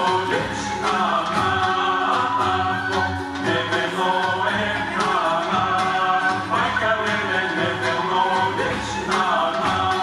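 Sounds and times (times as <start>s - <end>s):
group singing folk song: 0.0s - 10.0s.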